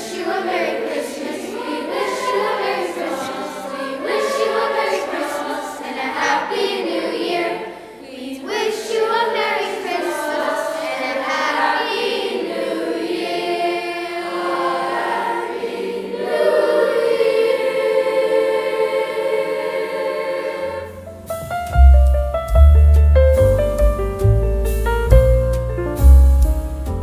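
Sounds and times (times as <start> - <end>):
youth choir singing carols: 0.0 - 21.3.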